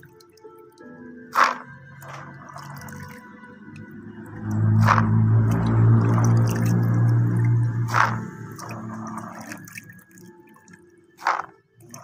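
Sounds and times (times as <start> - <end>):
background music: 0.0 - 12.0
hands splashing water in bucket: 1.3 - 12.0.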